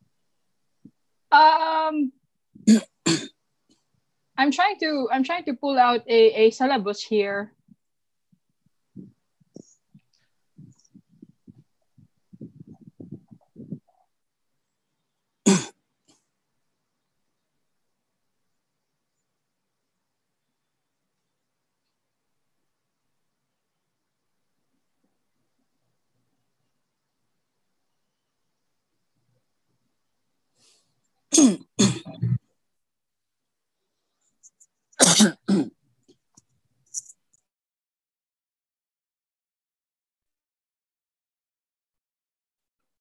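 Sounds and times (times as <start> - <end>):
person clearing throat: 2.6 - 3.4, 15.5 - 15.8, 31.3 - 32.4, 35.0 - 35.8
person coughing: 2.6 - 3.4, 15.5 - 15.8, 31.3 - 32.4, 35.0 - 35.7.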